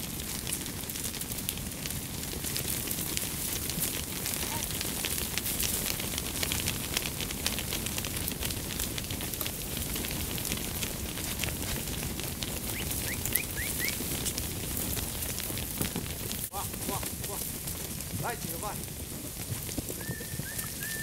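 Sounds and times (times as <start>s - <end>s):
sheep hooves on asphalt: 0.0s - 21.0s.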